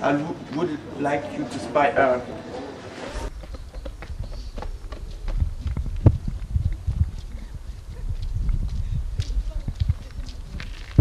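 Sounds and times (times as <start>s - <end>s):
wind buffeting microphone: 3.2s - 11.0s.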